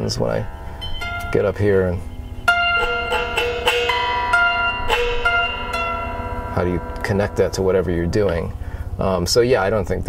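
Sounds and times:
electric guitar plucked notes: 0.0s - 9.0s.

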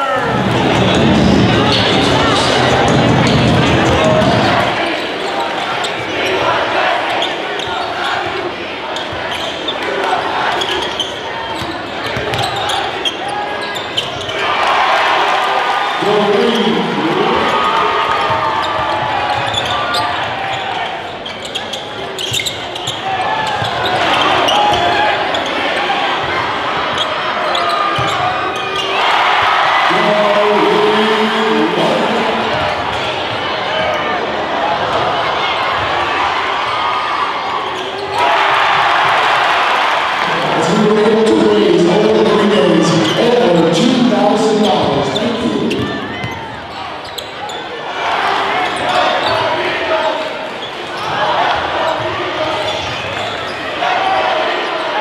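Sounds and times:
crowd shouting: 0.0s - 22.2s, 22.8s - 55.0s
crowd voices: 0.0s - 55.0s
basketball bouncing on wooden court: 11.6s - 12.8s.

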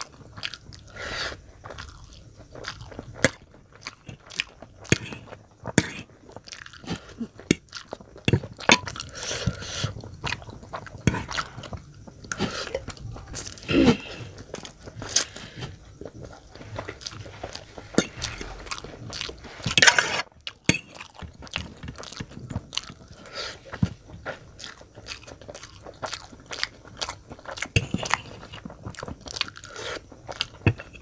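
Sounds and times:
person chewing noodles: 0.0s - 31.0s.

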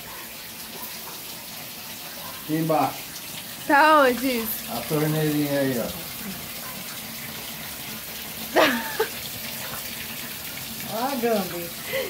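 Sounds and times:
water jet spraying and splashing: 0.0s - 12.0s.

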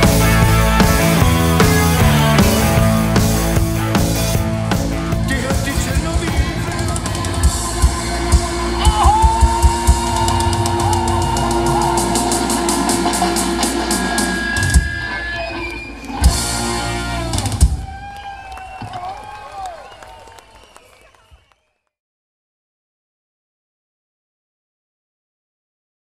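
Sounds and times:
guitars ringing with bending notes: 0.0s - 9.0s
rock band playing: 0.0s - 18.7s.

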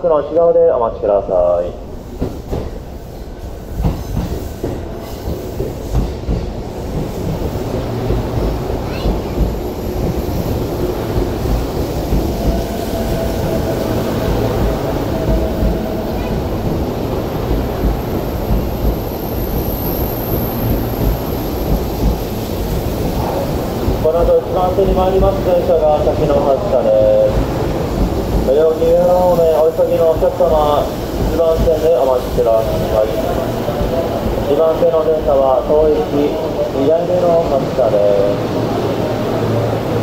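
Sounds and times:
train wheels rumbling on rails: 0.0s - 40.0s.

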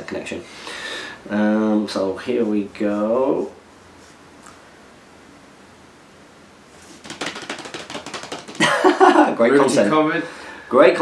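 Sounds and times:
rapid small clicks: 7.0s - 8.7s
men laughing and exclaiming: 8.6s - 9.6s.

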